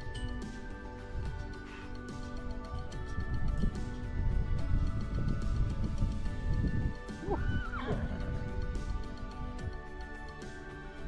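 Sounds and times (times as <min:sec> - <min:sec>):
background music: 0:00.0 - 0:11.0
horse whinnying: 0:07.2 - 0:08.4.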